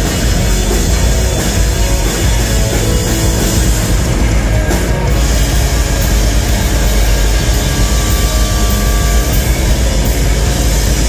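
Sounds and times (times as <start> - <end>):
rock band playing loud: 0.0 - 11.0.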